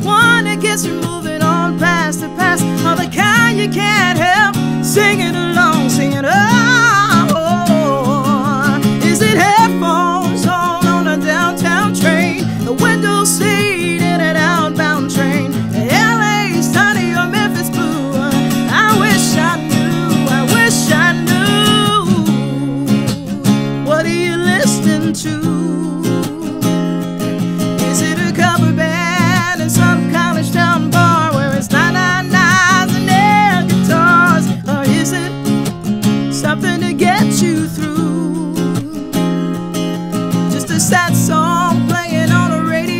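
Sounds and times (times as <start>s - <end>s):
acoustic guitar strumming: 0.0s - 42.9s
woman singing: 0.0s - 42.9s.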